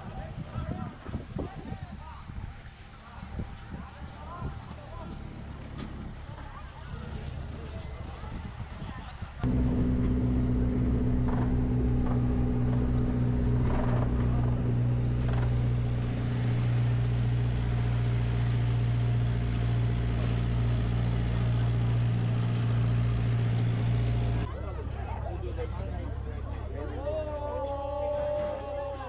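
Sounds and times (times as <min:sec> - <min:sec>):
tram engine humming: 0:09.4 - 0:24.5.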